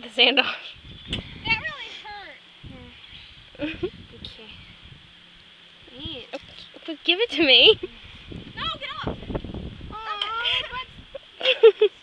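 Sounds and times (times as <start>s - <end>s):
girl's sliding vocal sounds: 1.4s - 3.2s.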